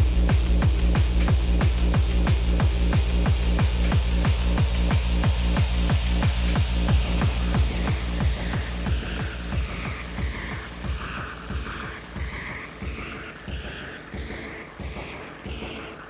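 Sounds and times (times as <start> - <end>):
kick drum sweeping down in pitch: 0.0 - 15.8
hard techno music: 0.0 - 16.0
hi-hat ticks: 0.0 - 16.0.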